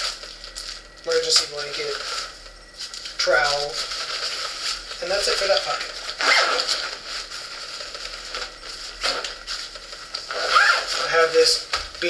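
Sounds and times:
zipper rasping: 6.2s - 6.9s, 10.3s - 11.1s.

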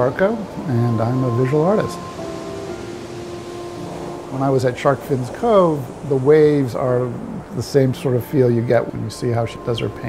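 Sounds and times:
music of long held tones: 0.0s - 10.0s
ocean surf: 0.0s - 10.0s.

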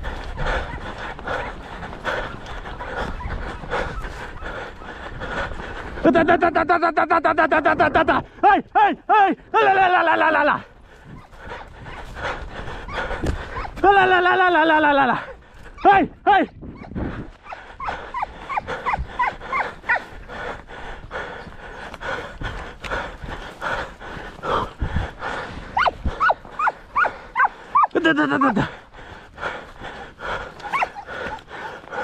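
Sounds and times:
hound yelping: 16.7s - 20.1s, 25.8s - 28.6s, 30.6s - 31.4s
feet rustling through scrub: 18.2s - 32.0s.

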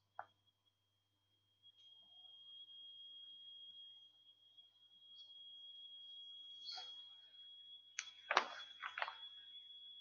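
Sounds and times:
faint high-pitched whine: 0.0s - 10.0s
faint low hum: 0.0s - 10.0s.

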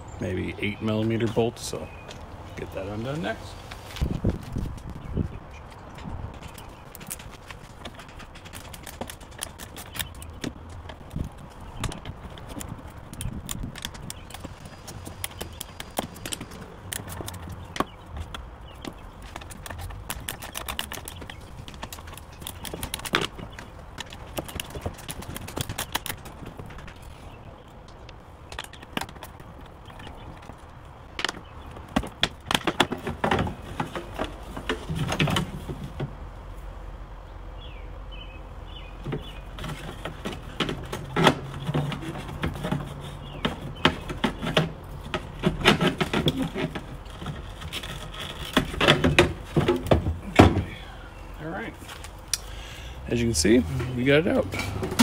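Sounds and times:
hand tools clicking and knocking: 39.1s - 50.7s.

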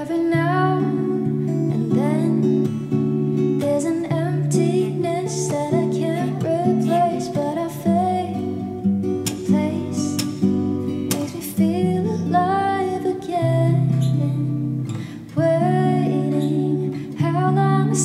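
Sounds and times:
acoustic guitar strummed: 0.0s - 18.0s.

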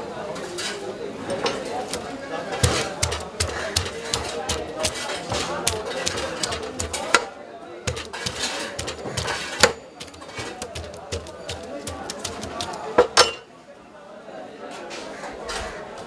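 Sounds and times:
murmur of voices: 0.0s - 16.0s
blade scraping fish scales: 1.8s - 7.0s, 7.9s - 12.9s
sharp knocks: 1.9s - 7.2s, 7.9s - 13.1s.

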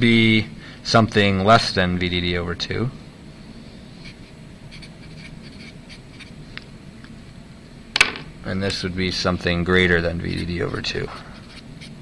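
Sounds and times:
low room hum: 0.0s - 12.0s
marker writing on paper: 4.0s - 6.3s, 10.2s - 12.0s.

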